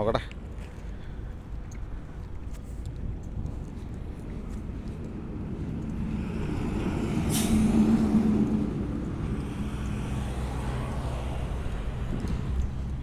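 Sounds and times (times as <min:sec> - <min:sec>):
vehicle passing: 0:03.0 - 0:13.0
short sharp hiss: 0:07.3 - 0:07.7.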